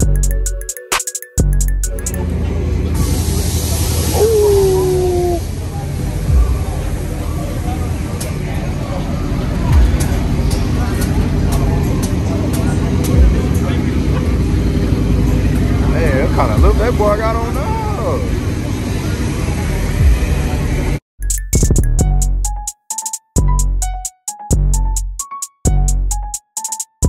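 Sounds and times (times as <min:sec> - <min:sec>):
vehicle engines idling: 0:01.4 - 0:21.0
indistinct voices: 0:03.8 - 0:20.8.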